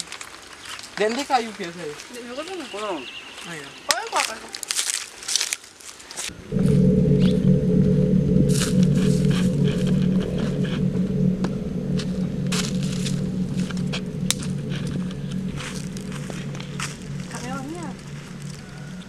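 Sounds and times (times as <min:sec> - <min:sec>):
low music drone: 0:06.3 - 0:19.0.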